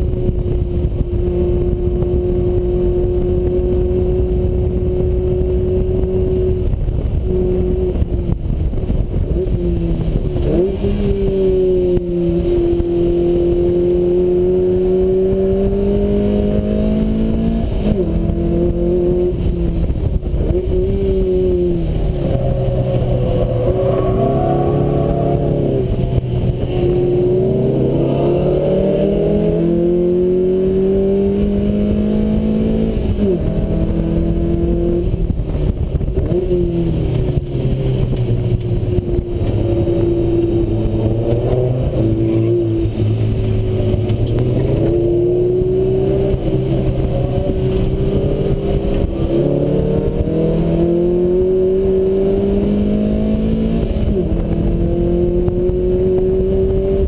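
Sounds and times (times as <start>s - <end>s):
car engine accelerating and upshifting: 0.0s - 57.0s.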